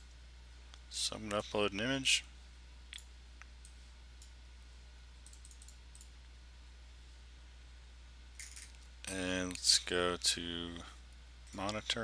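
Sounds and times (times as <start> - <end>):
low electrical hum: 0.0 - 12.0
computer mouse clicks: 5.2 - 6.2.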